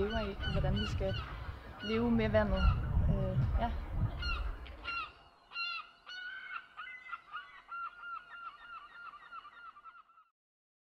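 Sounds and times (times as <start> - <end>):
bird calling rapidly: 4.2 - 10.3.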